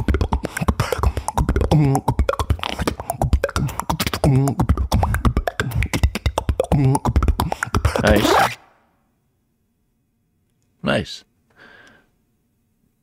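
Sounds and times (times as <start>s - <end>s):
beatbox vocal percussion: 0.0s - 8.6s.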